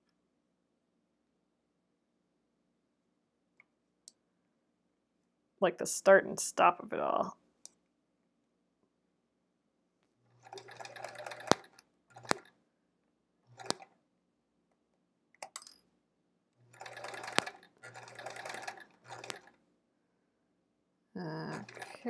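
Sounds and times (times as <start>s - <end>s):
sewing machine stitching: 10.3s - 12.6s, 13.4s - 14.0s, 16.6s - 19.6s, 21.5s - 22.0s.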